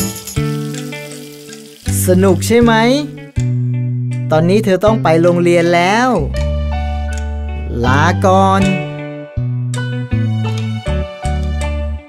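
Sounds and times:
cartoon running water rush: 0.1s - 2.5s.

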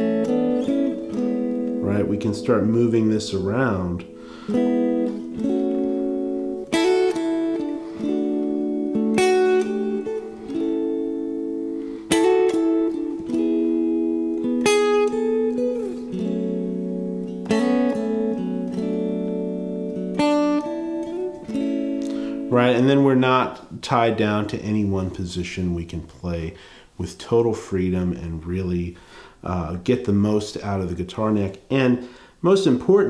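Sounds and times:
clean electric guitar chords: 0.0s - 23.8s.

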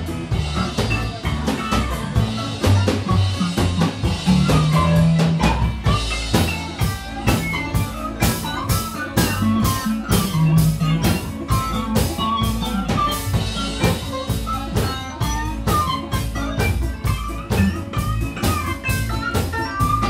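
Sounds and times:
drum kit steady beat: 0.0s - 20.0s
electric guitar: 0.0s - 20.0s
walking upright bass: 0.0s - 20.0s.

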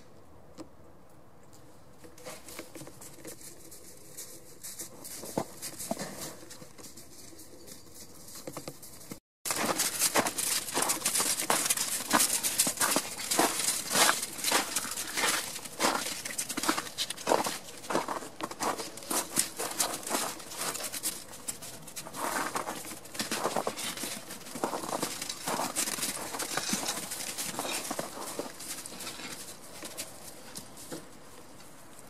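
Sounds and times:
footsteps crunching in snow: 9.5s - 31.4s.

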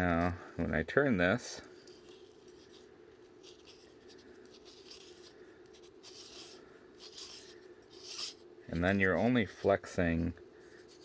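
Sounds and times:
steady low hum: 0.0s - 11.0s
plastic gears scraping: 3.4s - 9.0s.

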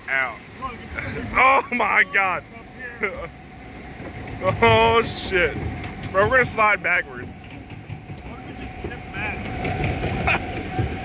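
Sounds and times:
mechanical rumble of ride boat: 0.0s - 11.0s
laughter and voices: 0.7s - 3.4s, 10.1s - 10.6s.

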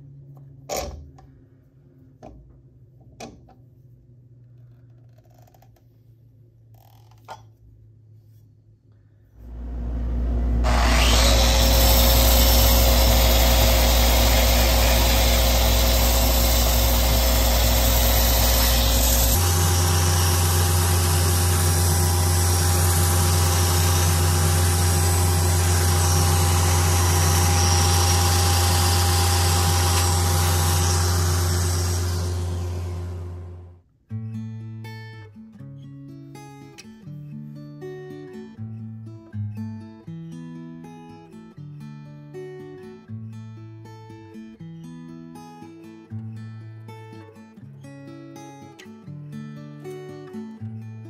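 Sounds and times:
power sander motor hum: 9.4s - 33.7s.

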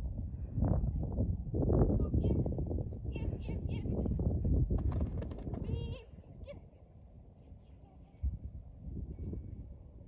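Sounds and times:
wind rumbling on microphone: 0.0s - 6.6s, 8.1s - 10.0s.

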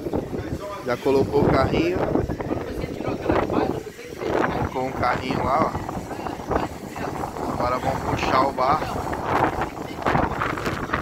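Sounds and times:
indistinct talking outdoors: 0.0s - 11.0s.

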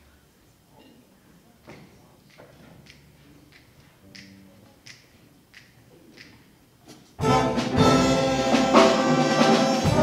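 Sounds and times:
finger snaps: 2.8s - 6.4s
jazz big band playing: 7.2s - 10.0s.

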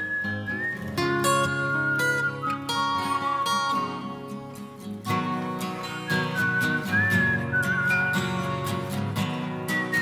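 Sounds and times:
whistled melody: 0.0s - 4.3s, 5.6s - 10.0s
acoustic guitar: 0.0s - 10.0s.

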